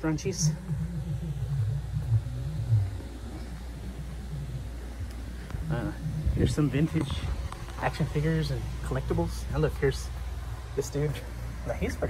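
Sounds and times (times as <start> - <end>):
low steady rumble: 0.0 - 12.0
wavering low hum: 0.0 - 12.0.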